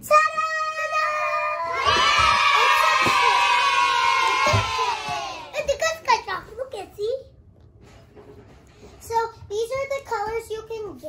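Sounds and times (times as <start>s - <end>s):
children cheering: 1.6s - 5.6s.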